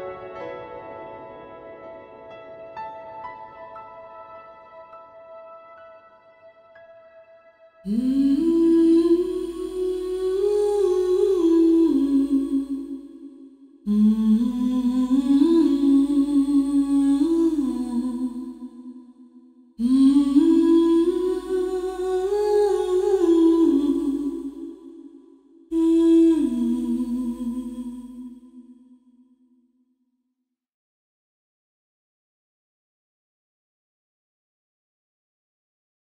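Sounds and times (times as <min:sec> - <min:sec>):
person humming melody: 0:07.9 - 0:13.0.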